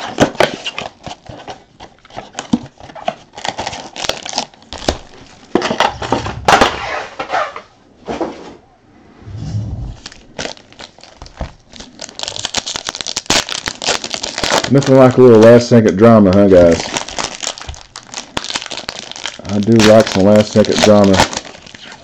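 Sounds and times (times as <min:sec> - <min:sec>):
wrappers tearing and crinkling: 0:03.3 - 0:06.0, 0:10.0 - 0:22.0
cards clicking and rustling: 0:19.5 - 0:22.0.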